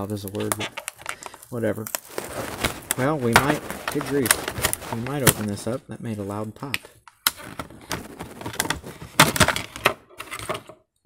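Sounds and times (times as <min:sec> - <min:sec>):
stiff plastic crinkling and cracking: 0:00.0 - 0:10.8.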